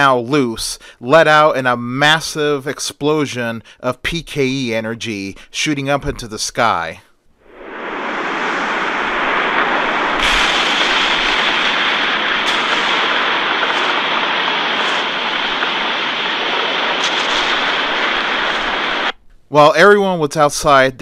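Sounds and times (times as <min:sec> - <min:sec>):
explosion rumble: 0:07.4 - 0:19.2
faint crackles: 0:07.4 - 0:19.4.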